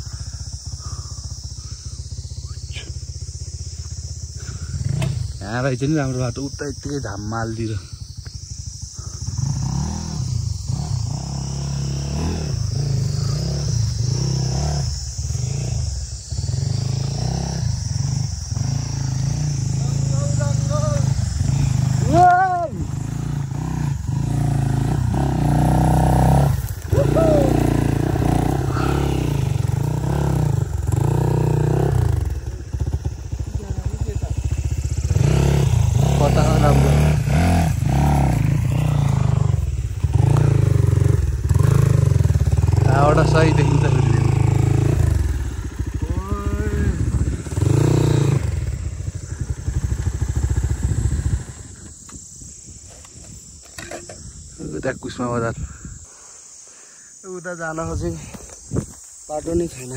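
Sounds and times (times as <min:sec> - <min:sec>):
dirt bike engine revving: 0:00.0 - 0:56.3.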